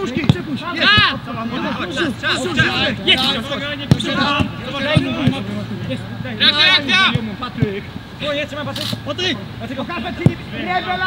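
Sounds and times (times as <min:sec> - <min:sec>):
men shouting and talking: 0:00.0 - 0:11.0.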